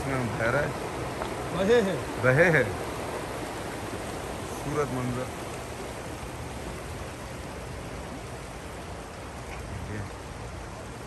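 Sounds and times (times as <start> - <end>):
river water rushing over stones: 0.0 - 11.0.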